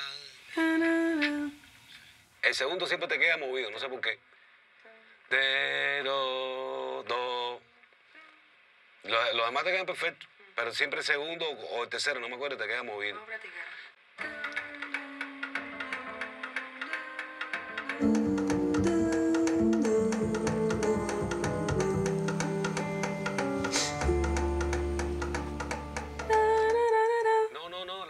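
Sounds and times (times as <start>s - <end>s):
person singing: 14.2s - 17.2s, 17.8s - 27.6s
percussion beat: 14.3s - 26.9s
band playing a song: 18.0s - 26.5s
deep bass note: 18.0s - 26.8s.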